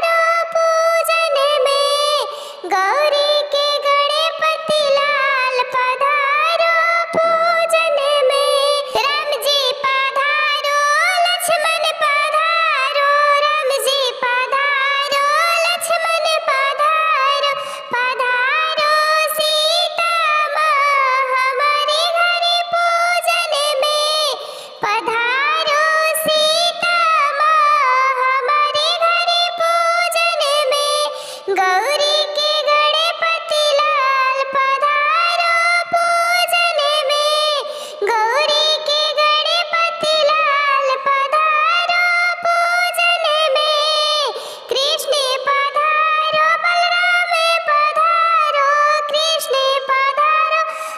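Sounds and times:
high-pitched voice singing: 0.0s - 50.9s.

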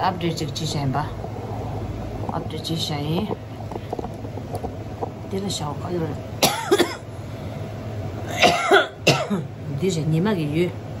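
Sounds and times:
woman speaking: 0.0s - 1.3s, 2.2s - 3.5s, 5.2s - 6.4s, 9.3s - 10.8s
woman coughing: 6.4s - 7.1s, 8.3s - 9.5s.

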